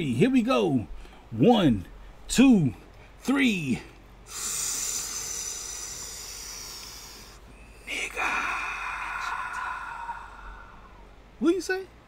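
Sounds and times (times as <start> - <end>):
hissing exhale: 4.3 - 7.6.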